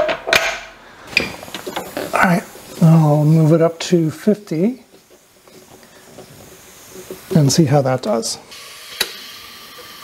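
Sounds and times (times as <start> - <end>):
compressed air hissing: 0.8 - 10.0.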